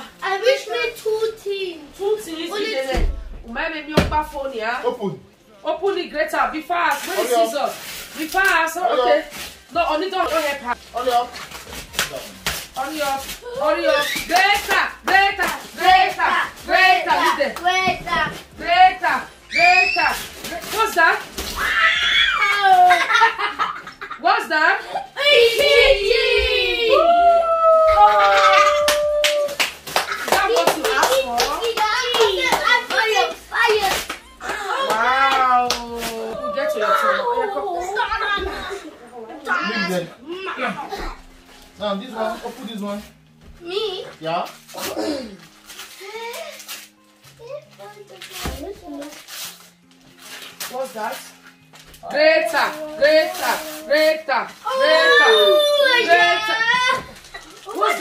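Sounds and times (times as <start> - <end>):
hand claps and slaps: 11.8 - 12.7, 27.9 - 36.2
children's excited voices: 54.6 - 57.1.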